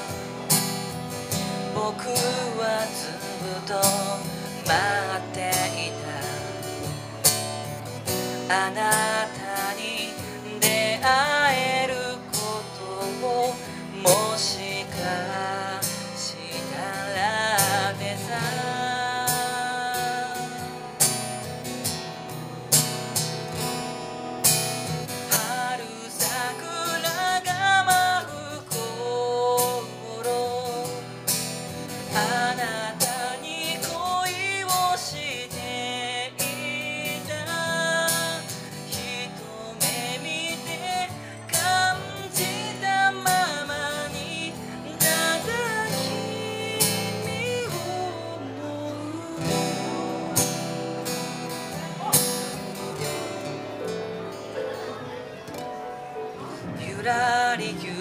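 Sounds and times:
man singing: 0.0 - 21.6, 25.1 - 53.9, 56.2 - 58.0
acoustic guitar strumming: 0.0 - 58.0.

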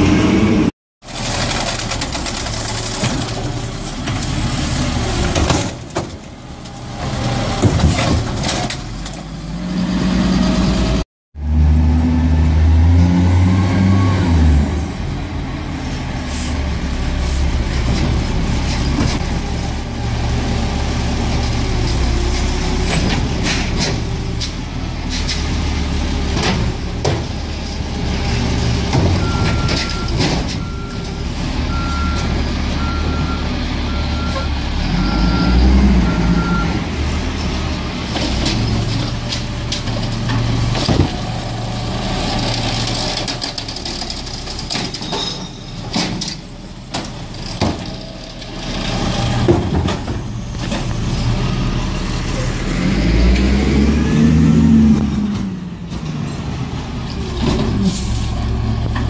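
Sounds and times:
side-loader arm lifting carts: 0.0 - 59.0.

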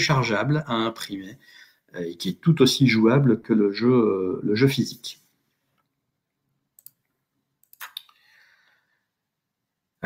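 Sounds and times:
faint sharp clicks: 6.8 - 8.2.

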